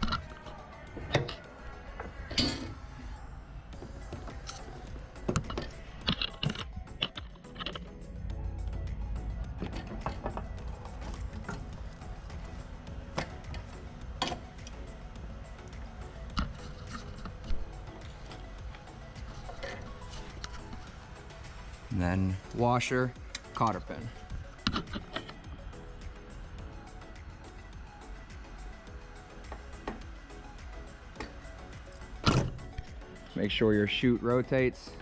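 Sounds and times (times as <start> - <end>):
metal clicks and knocks: 0.0 - 2.8, 3.8 - 8.0, 9.3 - 12.4, 13.0 - 14.9, 15.6 - 20.8, 24.6 - 25.5
background music: 0.0 - 35.0.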